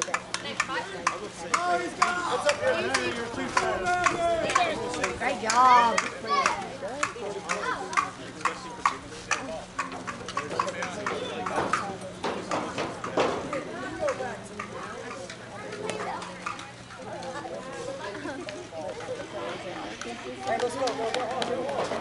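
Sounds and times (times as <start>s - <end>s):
people calling and chattering: 0.0s - 22.0s.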